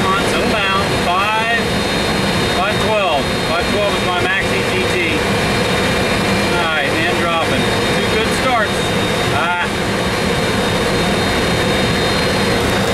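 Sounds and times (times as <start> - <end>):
jet engine drone and whine: 0.0 - 12.9.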